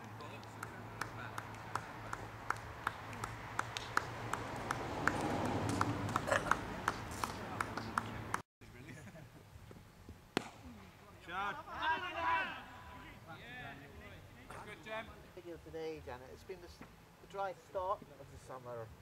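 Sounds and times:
people clapping slowly: 0:00.0 - 0:08.4.

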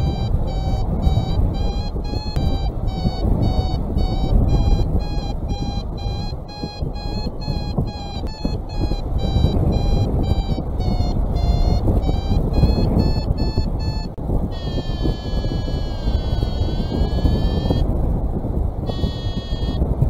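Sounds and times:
variometer beeping: 0:00.0 - 0:17.9, 0:18.8 - 0:19.9
wind on microphone: 0:00.0 - 0:20.0.

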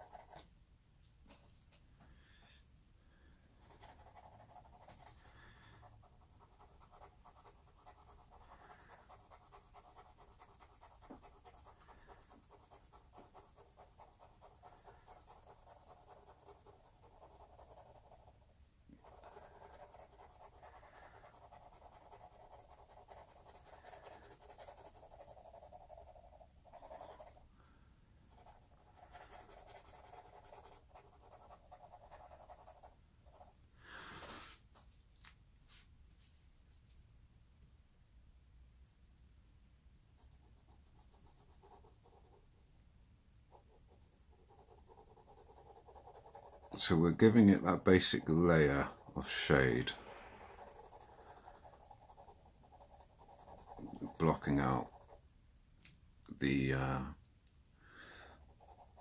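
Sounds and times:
pencil sketching on paper: 0:00.0 - 0:00.4, 0:03.2 - 0:27.5, 0:28.2 - 0:33.5, 0:40.2 - 0:42.5, 0:43.5 - 0:55.2, 0:58.2 - 0:59.0.

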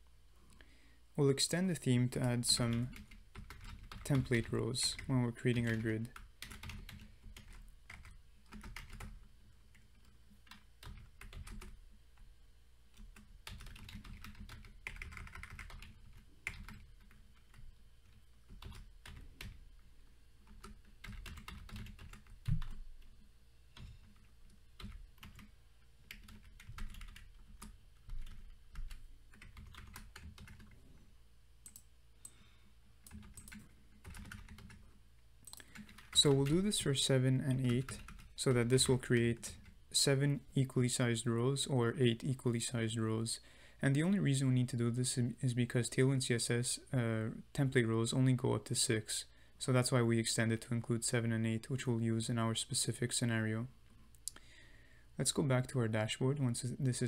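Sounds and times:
computer keyboard typing: 0:02.6 - 0:11.8, 0:13.0 - 0:19.6, 0:20.4 - 0:22.8, 0:23.8 - 0:25.5, 0:26.1 - 0:30.8, 0:31.6 - 0:31.8, 0:33.0 - 0:34.8, 0:35.5 - 0:36.6, 0:37.6 - 0:39.0.

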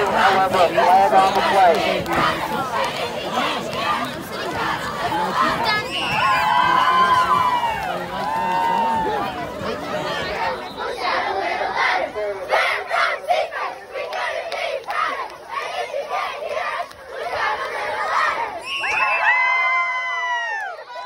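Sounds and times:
cheerleaders shouting a chant: 0:00.0 - 0:21.0.

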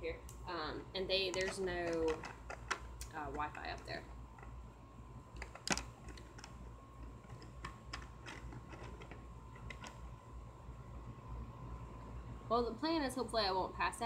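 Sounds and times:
faint steady hum: 0:00.0 - 0:14.0
small objects clicking and tapping: 0:01.2 - 0:04.6, 0:05.4 - 0:10.0.

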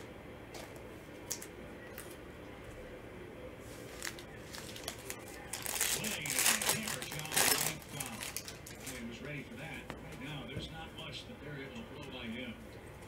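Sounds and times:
foil wrapper crinkling and tearing: 0:03.9 - 0:09.0.

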